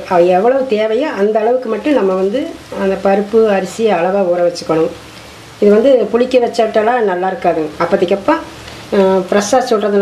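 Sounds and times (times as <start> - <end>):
person talking: 0.0 - 5.0, 5.6 - 10.0.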